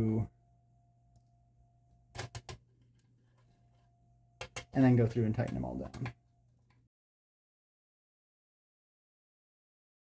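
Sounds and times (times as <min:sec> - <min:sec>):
faint hum: 0:00.0 - 0:06.9.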